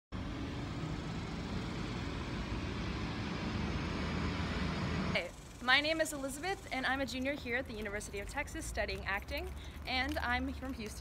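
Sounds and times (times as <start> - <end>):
low uneven outdoor rumble: 0.2 - 11.0.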